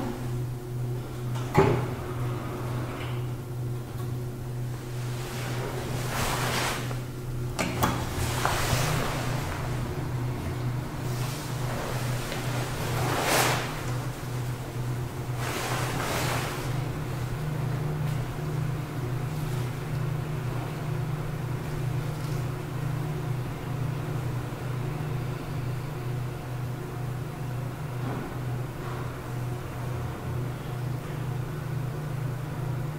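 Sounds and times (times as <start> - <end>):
elevator machinery hum: 0.0 - 32.9.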